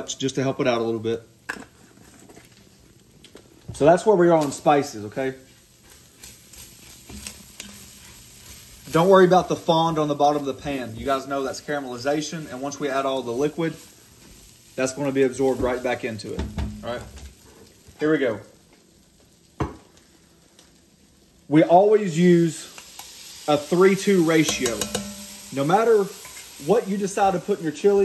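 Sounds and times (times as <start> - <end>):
ground beef frying: 0.0 - 28.0
meat sizzling in a pot: 0.0 - 28.0
spatula stirring and scraping: 1.5 - 2.8, 5.4 - 14.6, 24.3 - 26.8
metal can knocking on countertop: 16.4 - 17.3.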